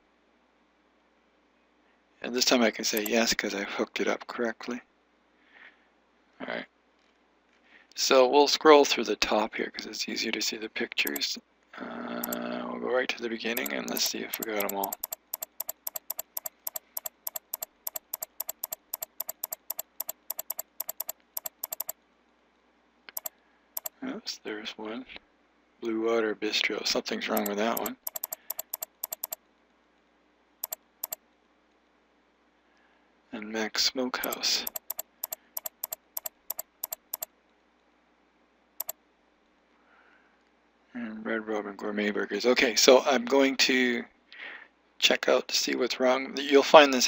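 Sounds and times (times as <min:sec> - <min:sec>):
computer mouse clicking rapidly: 0:02.9 - 0:03.3, 0:11.0 - 0:11.3, 0:13.5 - 0:22.0, 0:23.1 - 0:23.9, 0:27.3 - 0:29.4, 0:30.6 - 0:31.2, 0:34.2 - 0:37.3.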